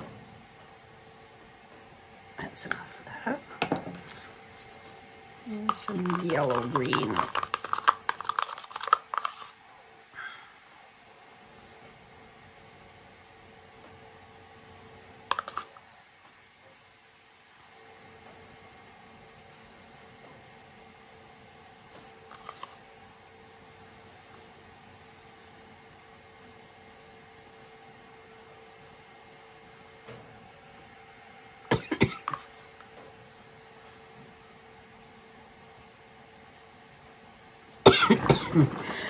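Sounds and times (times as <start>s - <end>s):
faint room hum: 0.0s - 39.0s
plastic cups and spoon clicking: 5.5s - 9.5s, 15.3s - 15.7s.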